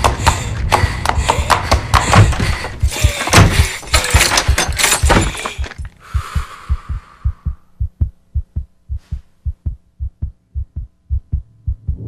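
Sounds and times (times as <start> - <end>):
rapid low thumping: 6.1 - 12.0.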